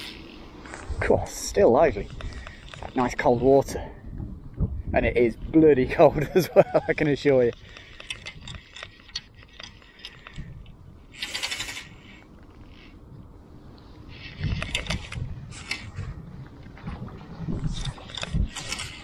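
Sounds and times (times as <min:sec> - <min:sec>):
line and rod scraping and knocking: 0:06.0 - 0:13.0, 0:14.1 - 0:16.2, 0:16.8 - 0:19.0
fly reel fast clicking: 0:11.1 - 0:12.2.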